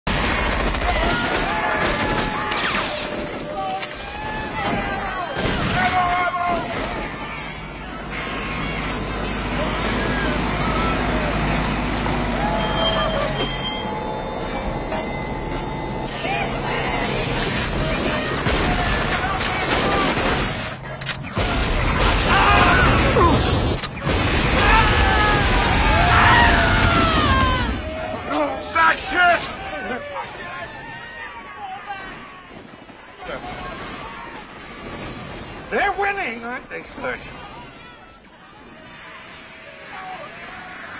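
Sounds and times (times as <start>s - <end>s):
gunfire: 0.1s - 11.3s, 17.0s - 27.8s, 32.0s - 36.2s
explosions: 0.1s - 12.2s, 16.5s - 28.3s, 33.2s - 36.4s
people shouting: 0.1s - 23.7s, 24.4s - 35.1s.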